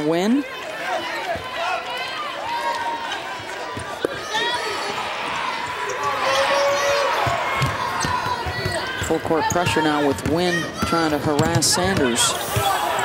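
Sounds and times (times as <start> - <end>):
arena crowd noise: 0.0 - 13.0
basketball bouncing on hardwood: 7.2 - 12.7.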